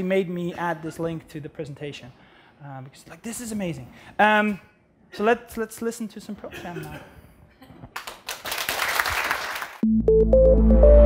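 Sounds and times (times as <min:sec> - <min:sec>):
audience applause: 0:08.0 - 0:09.8.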